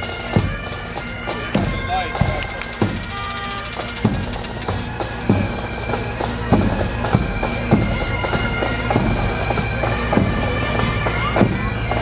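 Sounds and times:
bagpipe drones: 0.0 - 12.0.

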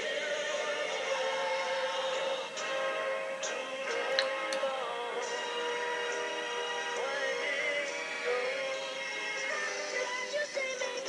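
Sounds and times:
pop song with singing: 0.0 - 11.0.

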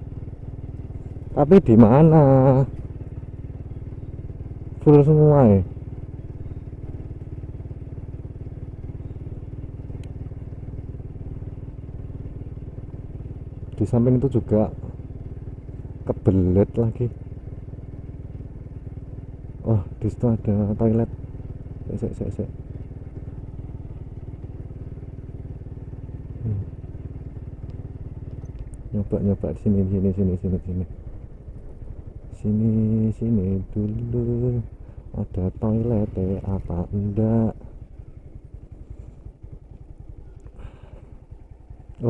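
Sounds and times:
motorcycle engine running: 0.0 - 42.0
small click: 27.6 - 28.8.

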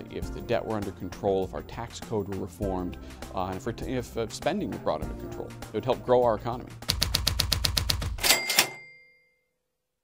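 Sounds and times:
rapid mechanical clicks: 6.9 - 8.6
bright metallic bell-like ding: 8.2 - 9.5.

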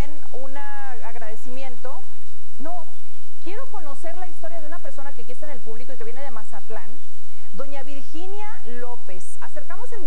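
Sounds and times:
woman speaking: 0.0 - 7.0, 7.6 - 10.0
steady background hiss: 0.0 - 10.0.

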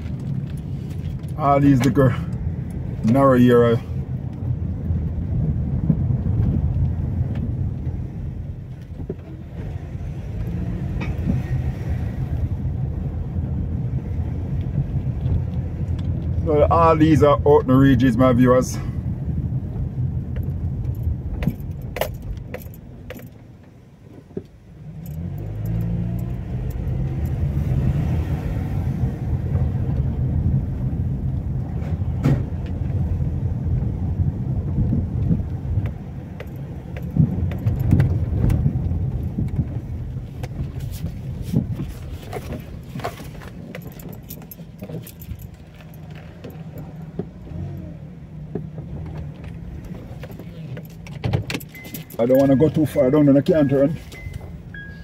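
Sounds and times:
car engine and tyre noise: 0.0 - 55.0
light rattling clicks: 20.3 - 23.8, 42.3 - 47.9.

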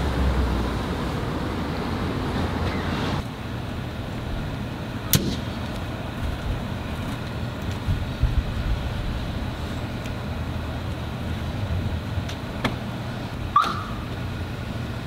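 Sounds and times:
vehicle engine idling: 0.0 - 15.0.

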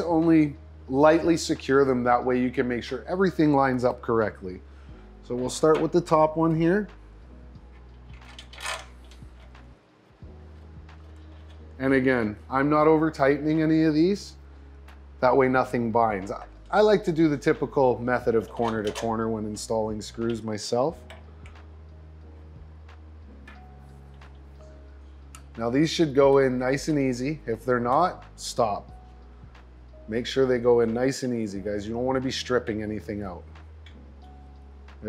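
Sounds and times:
quiet background music: 0.0 - 35.0.

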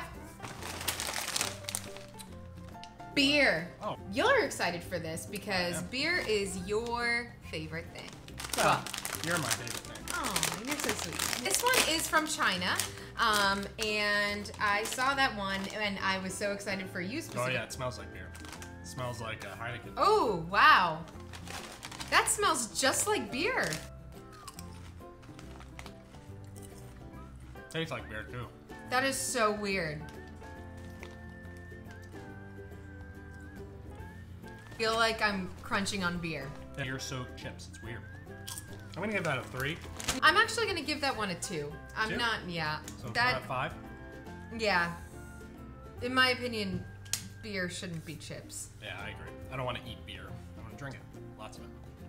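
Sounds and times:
background music: 0.0 - 52.0
chip bag crinkling: 0.4 - 2.8, 8.0 - 15.8, 18.2 - 19.2, 21.0 - 26.9, 30.1 - 31.6, 38.4 - 40.2.

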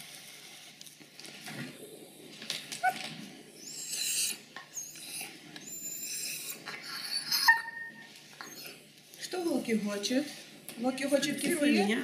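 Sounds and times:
dog whining: 2.8 - 8.8.

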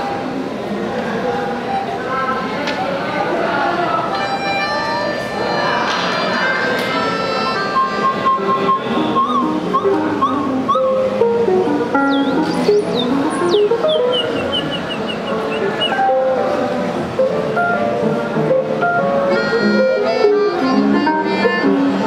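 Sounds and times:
electronic-acoustic ensemble music: 6.6 - 22.0
theremin swooping glides: 7.8 - 16.6.

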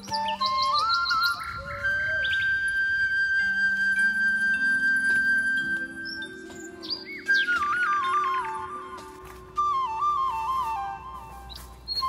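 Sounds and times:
bird chirps: 0.0 - 2.9, 4.5 - 8.4
flute music: 0.0 - 12.0.

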